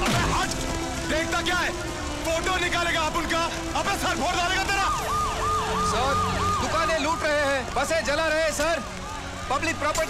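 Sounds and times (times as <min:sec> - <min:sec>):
voices: 0:00.0 - 0:10.0
siren yelping: 0:04.5 - 0:09.9.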